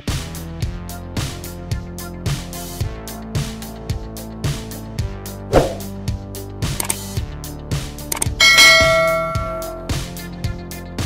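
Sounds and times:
guitar music with steady beat: 0:08.0 - 0:10.6
bell chime: 0:08.2 - 0:10.0.

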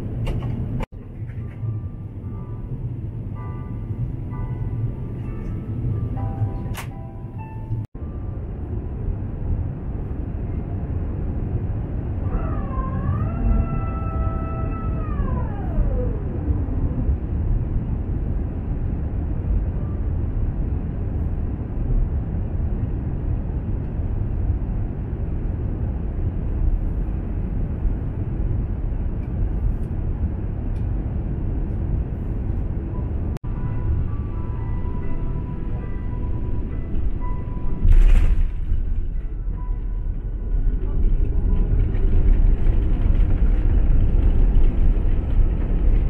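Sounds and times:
jet engine and airflow rumble: 0:00.0 - 0:46.0.

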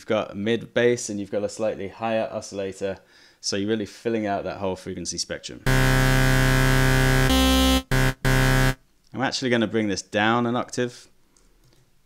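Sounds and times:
synth bass notes: 0:05.7 - 0:08.8.

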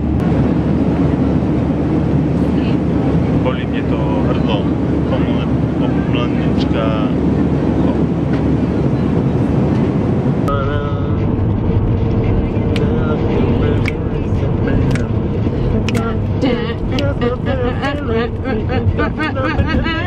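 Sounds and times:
aircraft cabin drone: 0:00.0 - 0:20.0
car interior hum: 0:00.0 - 0:20.0.

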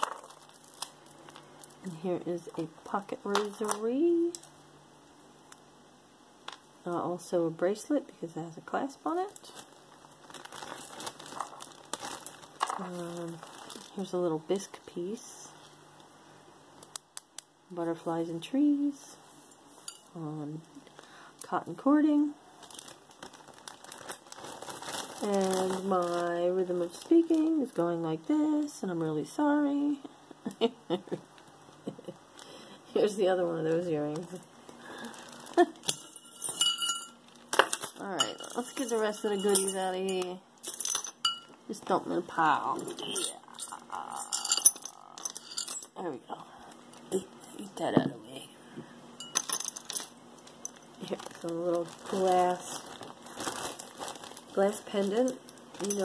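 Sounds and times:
jewelry clicking and rustling: 0:00.0 - 0:02.0, 0:09.3 - 0:14.1, 0:34.1 - 0:41.7, 0:42.7 - 0:46.0, 0:49.2 - 0:56.0.

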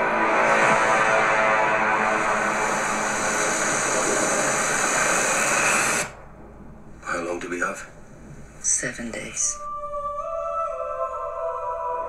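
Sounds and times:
loud dense roaring rush: 0:00.0 - 0:06.4.

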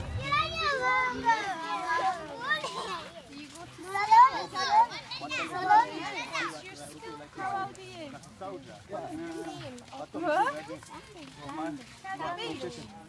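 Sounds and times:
children shouting: 0:00.0 - 0:03.2
children chattering: 0:00.0 - 0:13.0.

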